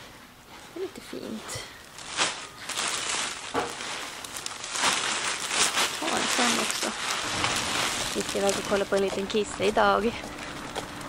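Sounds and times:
plastic-wrapped bundles crinkling: 1.8s - 11.0s.

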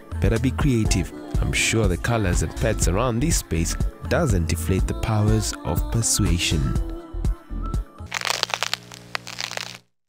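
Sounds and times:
dense crackling and clicking: 8.1s - 9.8s.

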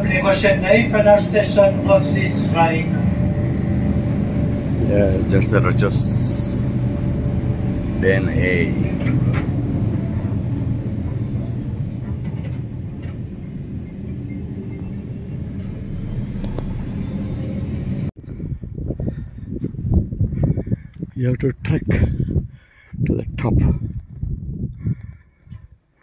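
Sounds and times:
train carriage rumbling: 0.0s - 20.7s.

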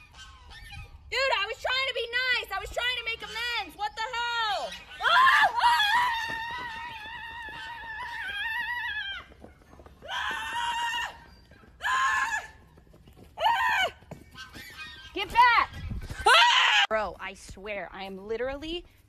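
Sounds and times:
woman screaming: 4.0s - 9.3s, 10.0s - 11.2s, 11.8s - 12.6s, 13.4s - 14.0s, 16.2s - 16.9s.

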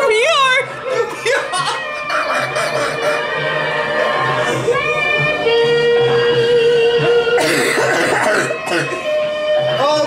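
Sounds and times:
background music: 0.0s - 10.0s
people laughing hard: 0.7s - 4.6s.

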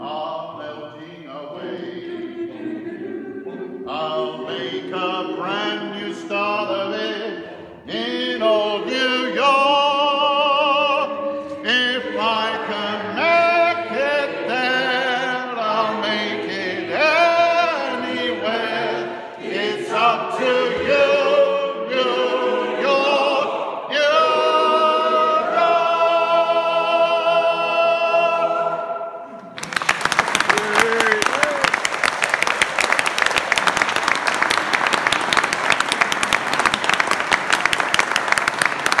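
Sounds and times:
a cappella choir singing: 0.0s - 29.5s
audience applause: 29.4s - 39.0s.

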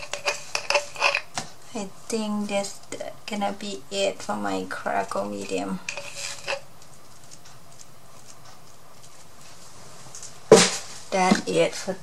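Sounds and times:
faint background hiss: 0.0s - 12.0s
handling rustle: 5.8s - 11.6s.

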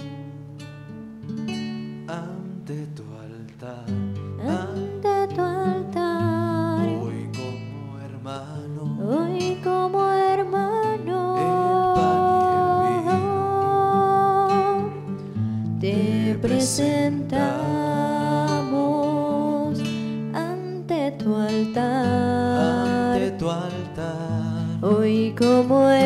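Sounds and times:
acoustic guitar: 0.0s - 26.0s
hymn singing: 11.1s - 15.0s.

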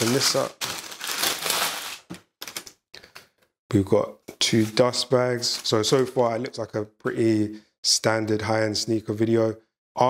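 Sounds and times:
tissue paper rustling and crinkling: 0.0s - 2.6s.

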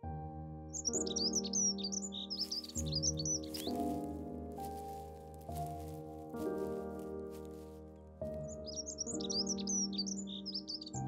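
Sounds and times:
background music sustained chords: 0.0s - 11.0s
small birds chirping: 0.7s - 11.0s.

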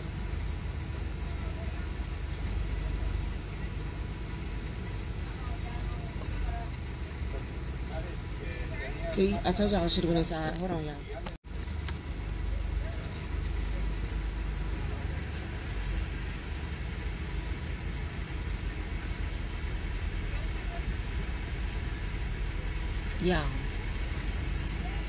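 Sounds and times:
car engine idling: 0.0s - 25.0s
person speaking: 7.9s - 11.4s, 23.1s - 23.9s.

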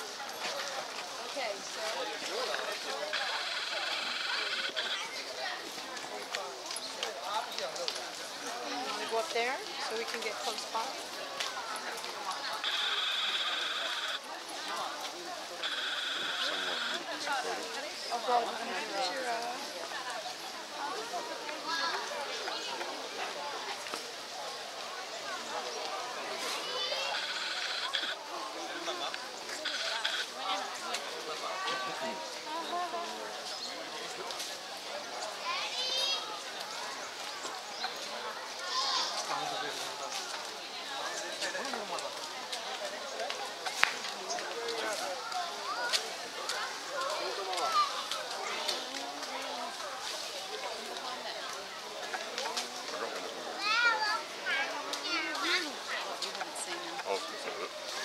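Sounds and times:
people talking indistinctly: 0.0s - 58.0s.

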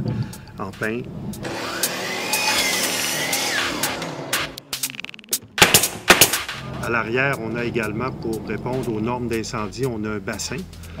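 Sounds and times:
nail gun shots into wood: 5.6s - 6.6s.

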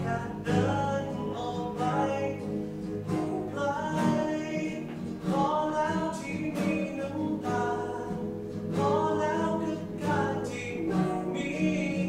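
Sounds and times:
strummed nylon-string guitar: 0.0s - 12.0s.

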